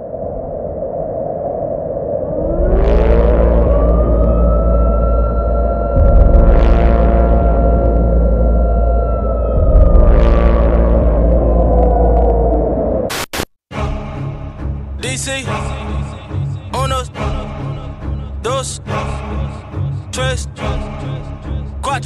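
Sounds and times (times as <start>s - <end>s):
deep bass rumble: 2.4s - 13.1s
electronic drone: 2.4s - 13.5s.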